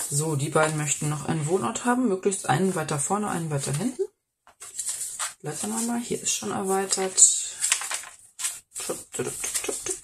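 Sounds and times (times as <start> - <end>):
paper pages rustling: 0.0 - 1.6, 4.5 - 10.0.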